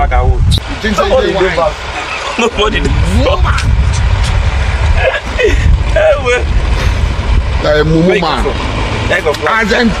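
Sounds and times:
man talking: 0.0 - 3.7, 7.6 - 10.0
steady low rumble: 0.0 - 10.0.

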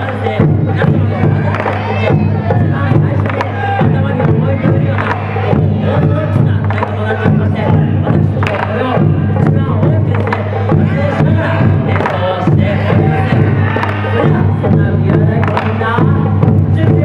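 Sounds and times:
crowd noise: 0.0 - 17.0
person shouting over microphone: 1.2 - 2.7.

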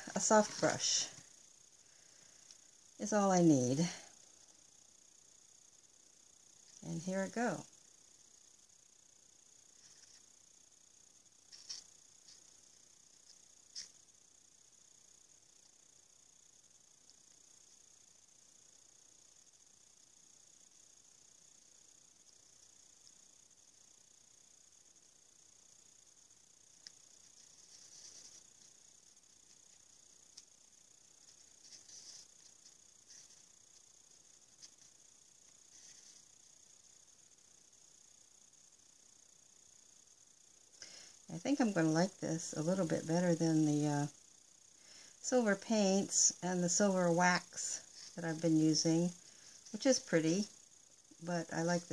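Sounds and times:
faint steady hiss: 0.0 - 51.9
paintbrush brushing: 9.7 - 10.4, 26.8 - 30.5, 31.1 - 36.6.

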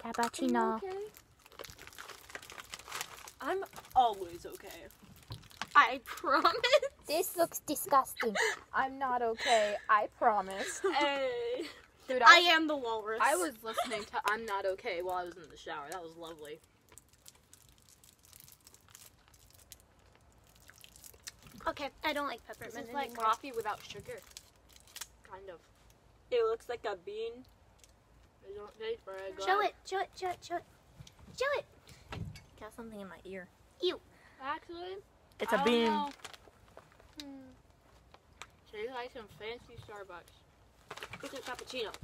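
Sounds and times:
plastic candy wrapper crinkling: 0.0 - 6.7, 14.2 - 26.0, 35.4 - 38.6, 40.2 - 42.0.

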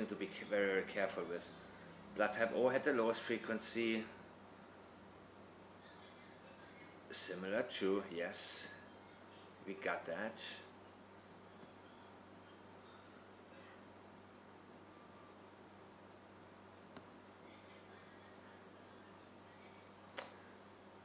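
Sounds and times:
sharp click: 20.1 - 20.4.

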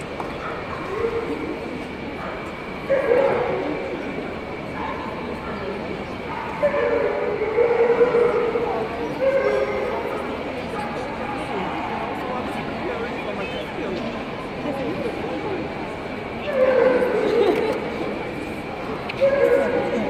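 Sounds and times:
background chatter: 0.0 - 20.0.

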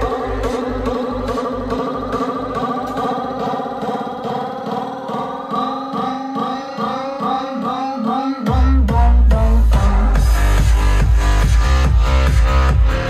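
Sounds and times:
kick drum and bass: 0.0 - 7.5, 8.4 - 13.0.

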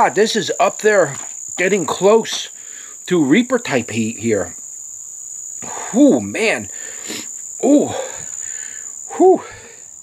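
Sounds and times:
man breathing out hard: 2.6 - 3.0, 6.7 - 10.0
man's pained exclamation: 9.1 - 9.6.

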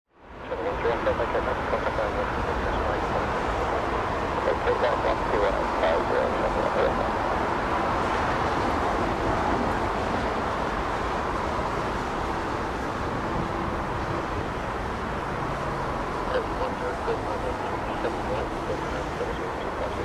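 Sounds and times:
outdoor background roar: 0.1 - 20.0
indistinct voices talking: 0.5 - 7.2, 16.2 - 20.0.

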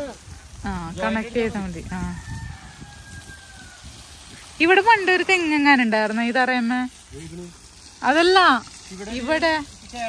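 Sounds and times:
garden hose spraying soil: 0.0 - 10.0.

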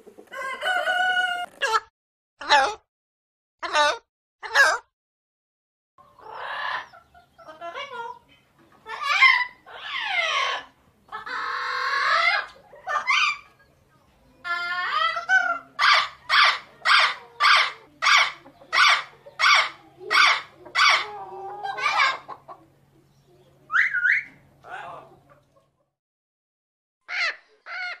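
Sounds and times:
chickens clucking: 0.0 - 1.8, 6.0 - 26.0.

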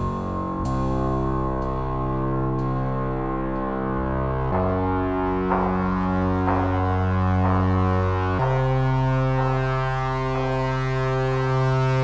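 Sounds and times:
held synthesizer chord: 0.0 - 12.0.

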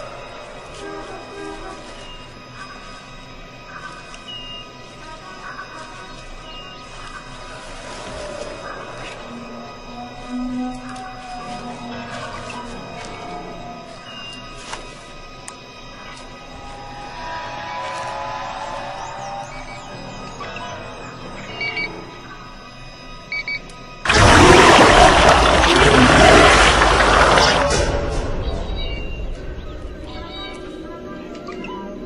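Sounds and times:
faint chirps: 0.0 - 24.1, 28.4 - 32.0
tense music: 0.0 - 32.0
loud blast of noise: 24.1 - 28.4.

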